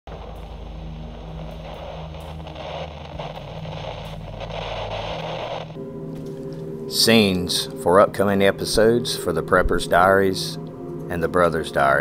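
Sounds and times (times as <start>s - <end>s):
television static: 0.0s - 5.8s
low steady hum: 0.1s - 11.1s.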